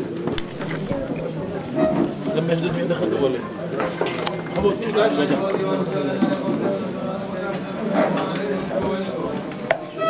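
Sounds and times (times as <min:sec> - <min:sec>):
voices murmuring prayers: 0:00.0 - 0:10.0.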